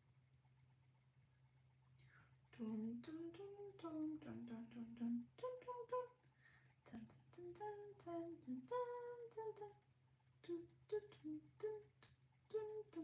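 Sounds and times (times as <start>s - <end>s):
faint low hum: 0.0s - 13.0s
woman humming: 2.6s - 6.1s, 6.9s - 9.7s, 10.4s - 13.0s.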